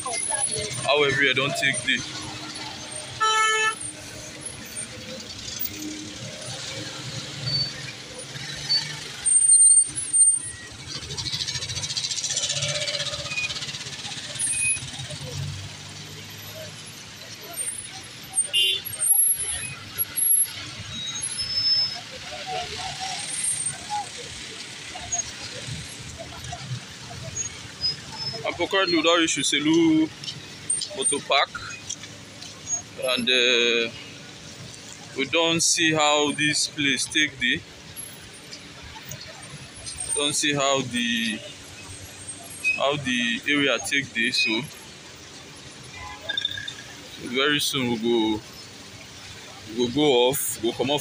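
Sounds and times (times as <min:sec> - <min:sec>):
traffic engines rumbling: 0:00.0 - 0:51.0
horn toot: 0:03.0 - 0:03.9, 0:18.4 - 0:19.0.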